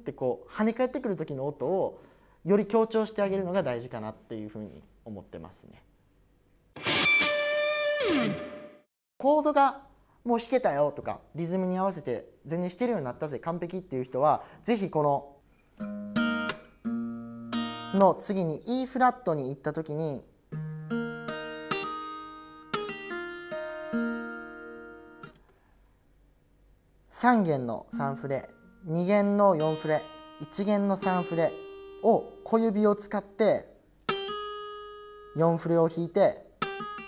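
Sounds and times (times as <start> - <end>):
fingerpicked acoustic guitar: 15.6 - 18.0, 20.5 - 25.4, 27.9 - 32.5, 34.1 - 35.4, 36.6 - 37.0
distorted electric guitar chord: 29.7 - 32.5.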